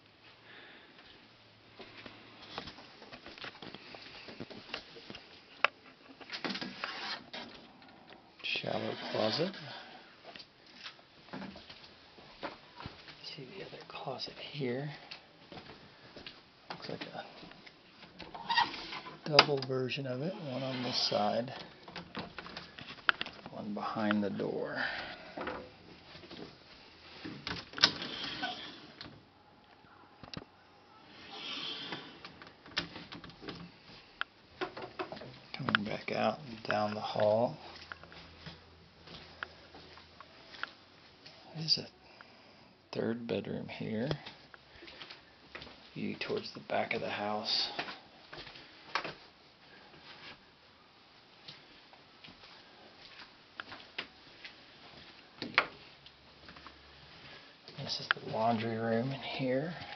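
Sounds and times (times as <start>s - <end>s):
wooden door sliding rustle: 18.1s - 19.6s, 20.3s - 22.8s, 27.2s - 29.2s.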